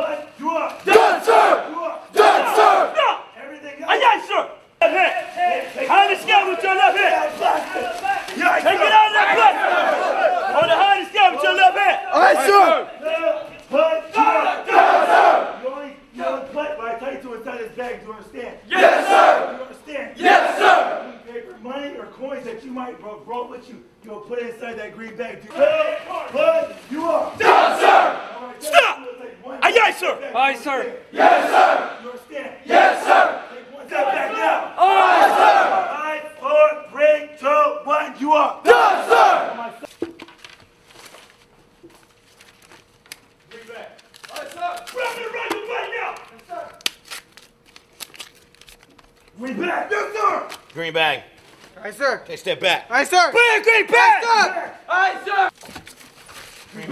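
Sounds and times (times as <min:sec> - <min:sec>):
group of men yelling in unison: 0:00.8 - 0:03.2, 0:08.4 - 0:12.8, 0:14.2 - 0:15.6, 0:18.7 - 0:19.6, 0:20.2 - 0:21.0, 0:27.4 - 0:28.9, 0:31.1 - 0:32.0, 0:32.7 - 0:36.0, 0:38.6 - 0:39.8
men shouting: 0:00.8 - 0:03.3, 0:05.9 - 0:13.4, 0:14.1 - 0:16.4, 0:18.7 - 0:21.2, 0:27.3 - 0:29.0, 0:29.6 - 0:36.0, 0:38.6 - 0:39.8
man yelling: 0:05.9 - 0:13.4, 0:28.6 - 0:30.3, 0:53.1 - 0:55.5.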